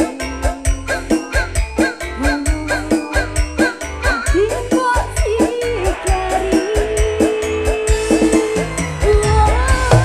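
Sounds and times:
live band with drums and keyboards: 0.0s - 10.0s.

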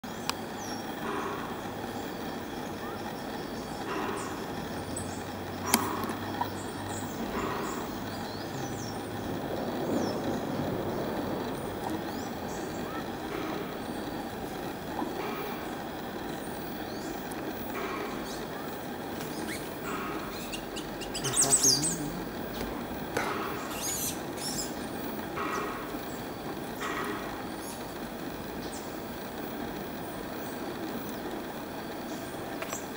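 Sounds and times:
low hum and rumble: 0.0s - 32.9s
sharp clicks: 5.6s - 6.5s
faint bird chirps: 19.3s - 22.6s.

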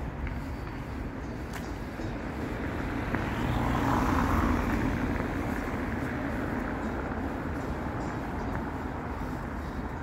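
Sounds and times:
vehicle passing by: 1.8s - 10.0s.

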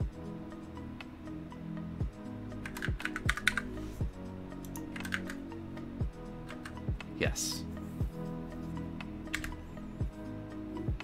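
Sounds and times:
typing on computer keyboard: 2.6s - 3.6s, 4.6s - 5.4s, 9.3s - 9.6s.

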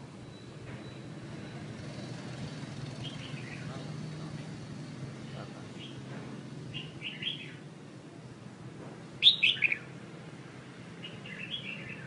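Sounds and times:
songbird chirping: 0.2s - 6.1s, 6.7s - 7.7s, 9.2s - 10.0s, 10.9s - 12.0s.

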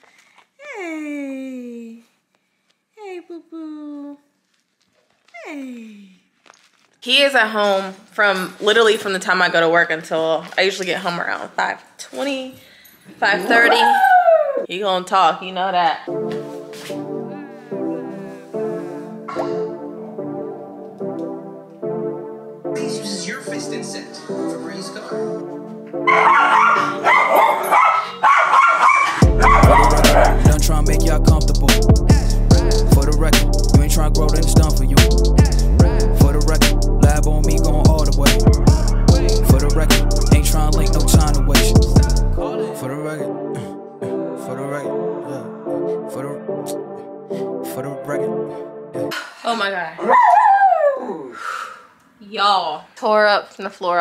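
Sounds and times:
small dog howling and yipping: 13.5s - 14.7s, 50.0s - 51.3s
soft background music: 15.0s - 28.1s, 29.3s - 31.7s, 38.7s - 50.5s
hip-hop track with heavy bass: 29.1s - 47.0s
low vocal sound: 29.2s - 44.2s, 50.0s - 51.4s
breathy exhale: 51.2s - 52.0s.

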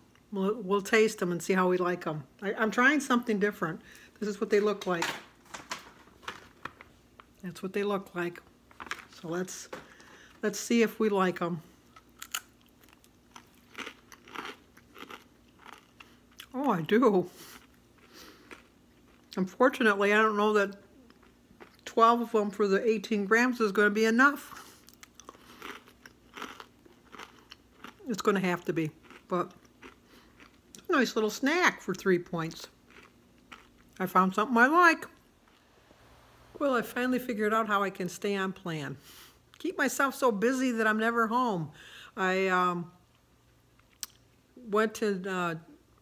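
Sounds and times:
snack packaging clicks and rustles: 4.8s - 7.4s, 8.7s - 10.0s
chewing crunchy crisp: 11.9s - 16.6s, 17.3s - 19.6s, 21.0s - 21.9s, 24.5s - 30.9s, 32.6s - 34.1s.

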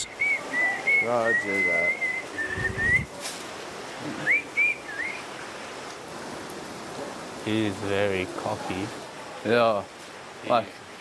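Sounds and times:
steady hiss: 0.0s - 11.0s
person whistling short notes: 0.2s - 3.1s.

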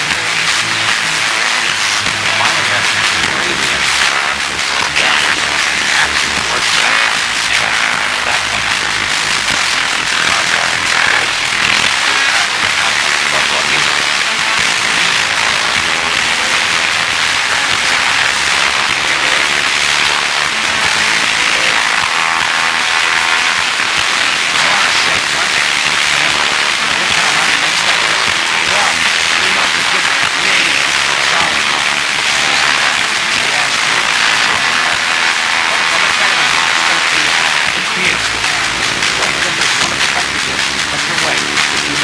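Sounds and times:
faint voices: 0.0s - 42.0s
steady tv static hiss: 0.0s - 42.0s.

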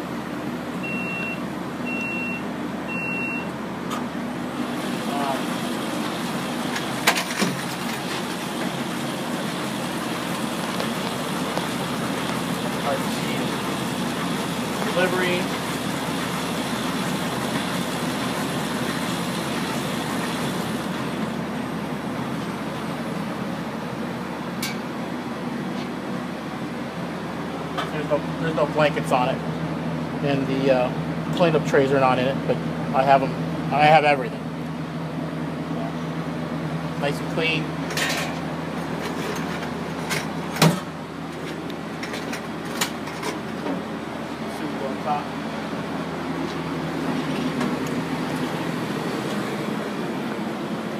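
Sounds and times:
printing press hum and whir: 0.0s - 50.9s.

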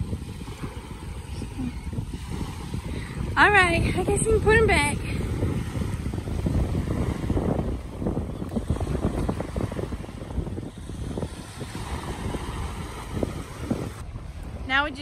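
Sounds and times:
small waves washing ashore: 0.0s - 15.0s
wind buffeting microphone: 0.0s - 15.0s.

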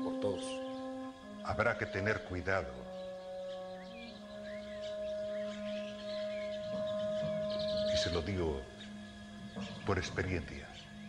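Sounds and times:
faint bird chirps: 0.0s - 11.0s
soft sustained background score: 0.0s - 11.0s.

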